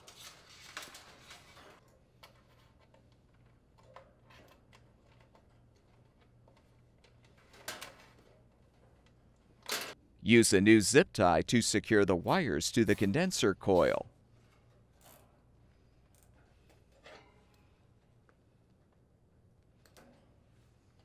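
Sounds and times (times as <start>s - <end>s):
wires rustling and clicking: 0.0s - 9.9s.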